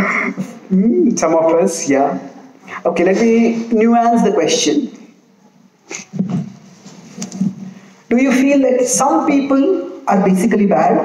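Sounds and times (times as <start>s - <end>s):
microphone handling noise: 5.9s - 7.9s
microphone rubbing and bumping: 5.9s - 7.9s.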